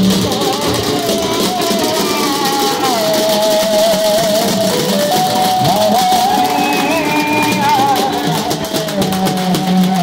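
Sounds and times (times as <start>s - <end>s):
frame drums fast rhythm: 0.0s - 10.0s.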